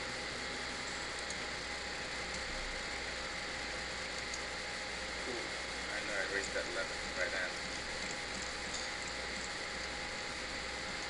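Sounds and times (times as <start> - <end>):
room background hiss: 0.0 - 11.0.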